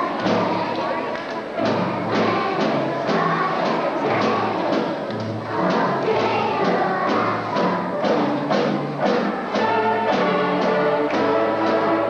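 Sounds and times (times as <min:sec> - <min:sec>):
string ensemble playing: 0:00.0 - 0:12.0.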